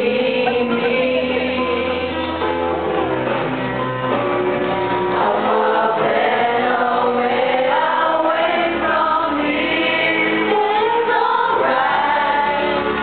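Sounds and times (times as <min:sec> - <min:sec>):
group singing together: 0:00.0 - 0:02.6, 0:05.1 - 0:13.0.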